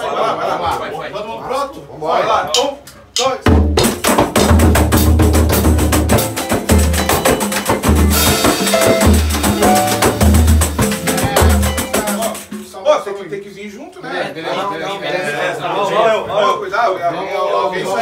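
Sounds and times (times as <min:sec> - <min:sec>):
deep drum pulses: 0:03.5 - 0:12.4
samba band playing: 0:03.5 - 0:12.8.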